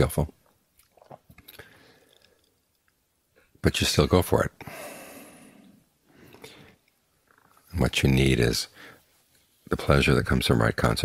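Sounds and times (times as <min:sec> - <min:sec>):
man breathing softly: 0:01.5 - 0:02.6, 0:04.6 - 0:06.9, 0:08.7 - 0:09.2.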